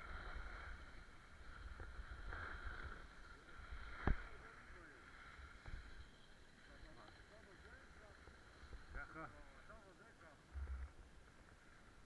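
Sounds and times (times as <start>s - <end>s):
skis scraping over snow: 0.0s - 10.4s.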